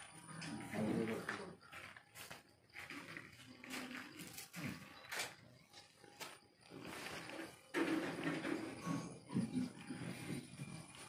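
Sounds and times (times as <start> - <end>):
people talking quietly: 0.0 - 2.4.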